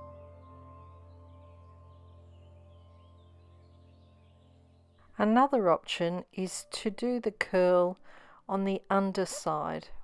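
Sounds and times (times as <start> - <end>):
soft ambient music: 0.0 - 7.1.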